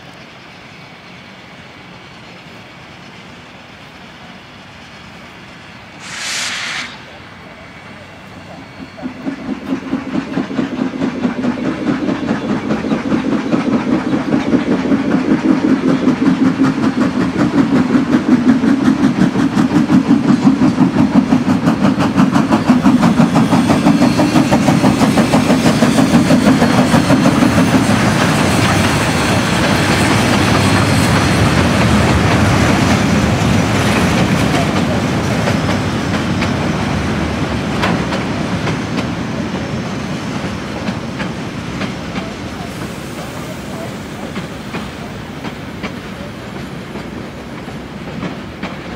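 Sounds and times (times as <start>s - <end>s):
steam locomotive passing: 0.0s - 48.9s.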